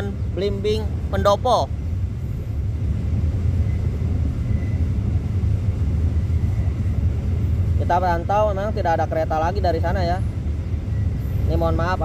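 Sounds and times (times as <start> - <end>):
freight train rumbling past: 0.0 - 12.0.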